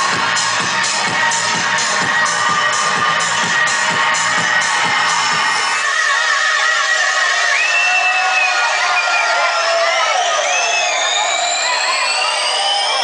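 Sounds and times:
crowd cheering and shouting: 0.0s - 13.0s
dance music breakdown: 0.0s - 13.0s
synth sweep rising in pitch: 7.8s - 13.0s.

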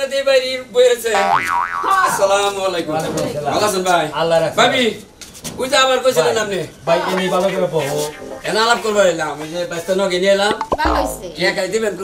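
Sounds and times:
comic boing sound effect: 1.2s - 2.3s, 7.1s - 9.0s, 10.5s - 11.6s
voices talking: 6.3s - 11.6s.

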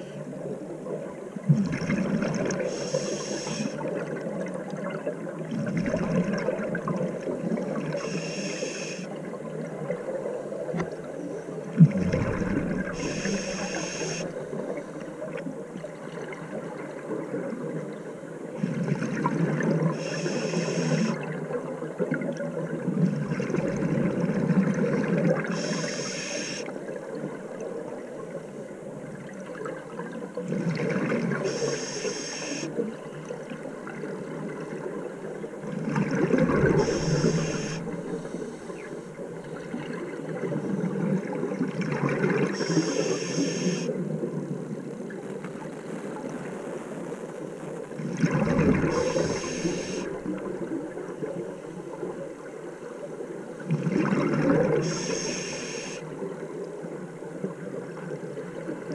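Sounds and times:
regulator inhale hiss: 2.6s - 3.8s, 7.9s - 9.2s, 12.8s - 15.1s, 20.0s - 21.2s, 25.5s - 26.7s, 31.4s - 32.8s, 36.6s - 39.0s, 42.5s - 43.9s, 48.8s - 50.2s, 54.8s - 56.1s.

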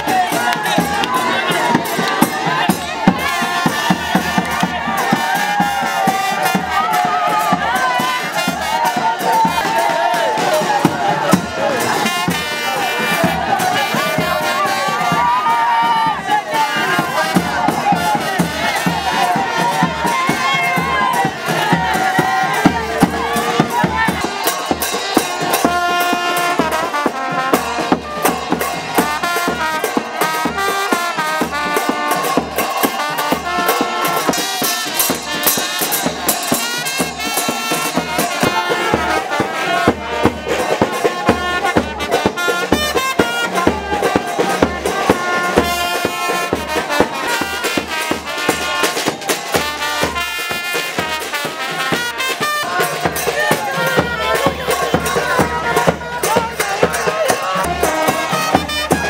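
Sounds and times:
brass band music: 0.0s - 59.0s
crowd noise: 0.0s - 59.0s
steady drum beat: 0.0s - 59.0s.

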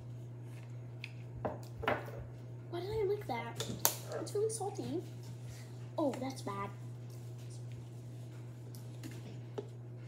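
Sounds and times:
steady low hum: 0.0s - 10.0s
bottle and cups knocking on counter: 1.4s - 2.2s.

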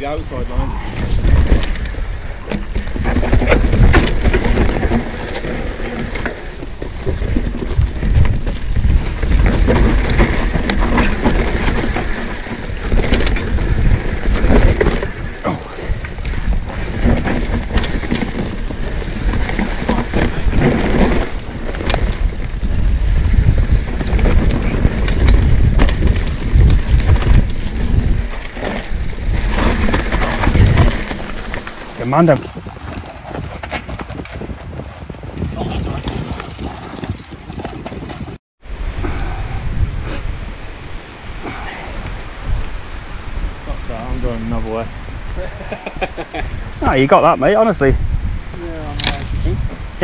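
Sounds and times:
bike clicking and rattling: 0.0s - 38.4s, 41.5s - 50.0s
bike tyres rumbling over dirt: 0.0s - 38.4s, 39.1s - 50.0s.

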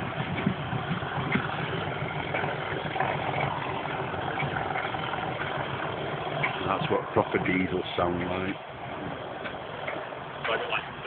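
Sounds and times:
diesel locomotive engine idling: 0.0s - 11.0s.

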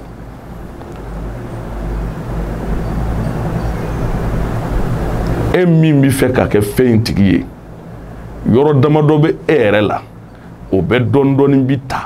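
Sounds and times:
low engine-like rumble: 0.0s - 12.0s.

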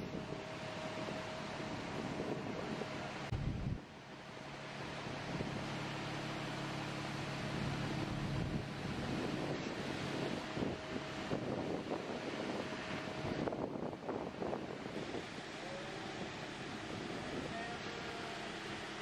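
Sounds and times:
wind noise on microphone: 0.0s - 19.0s.

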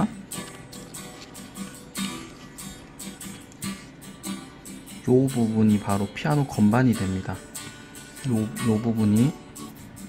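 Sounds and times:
acoustic guitar plucked notes: 0.0s - 10.0s.

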